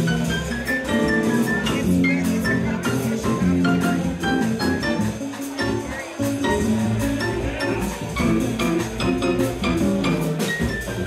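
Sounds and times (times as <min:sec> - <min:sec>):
cymbal and drum strokes: 0:00.0 - 0:11.0
electric keyboard chords: 0:00.0 - 0:11.0
walking bass line: 0:00.0 - 0:11.0.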